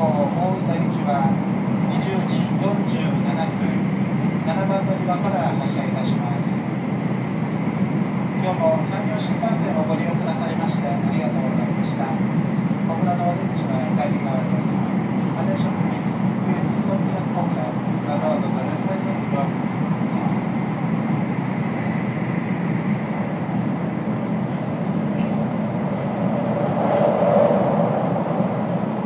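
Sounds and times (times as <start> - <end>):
constant low hum: 0.0 - 29.0
train running rumble: 0.0 - 29.0.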